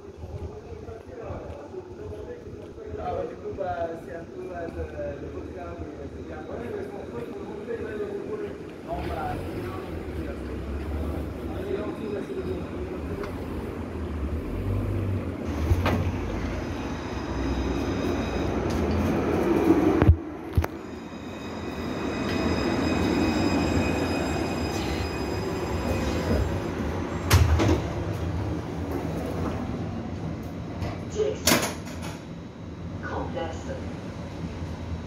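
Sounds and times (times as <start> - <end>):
high whine of tram motors: 0.0 - 35.0
tram rumbling: 0.0 - 35.0.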